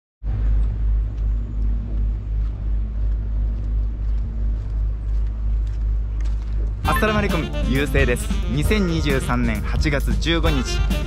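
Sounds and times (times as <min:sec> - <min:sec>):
wind buffeting microphone: 0:00.2 - 0:06.9.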